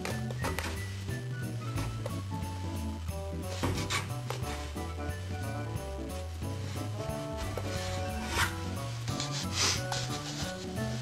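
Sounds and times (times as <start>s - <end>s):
background music sustained notes: 0.0s - 11.0s
rubbing scrapes on wood: 6.7s - 11.0s.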